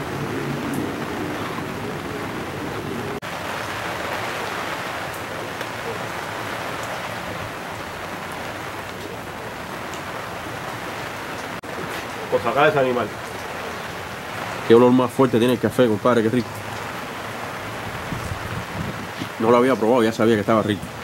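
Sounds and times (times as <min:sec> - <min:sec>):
steady rain falling: 0:00.0 - 0:21.0.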